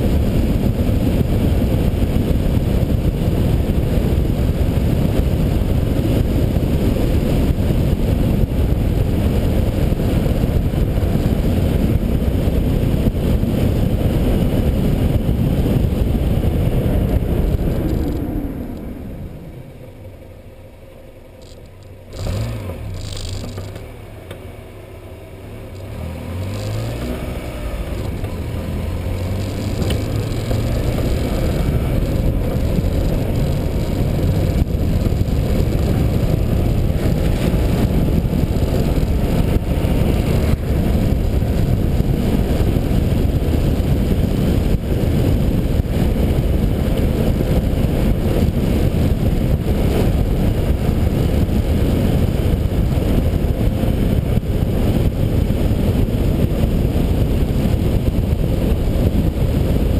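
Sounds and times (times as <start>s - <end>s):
low hum: 0.0s - 59.9s
wind and road noise: 0.0s - 59.9s.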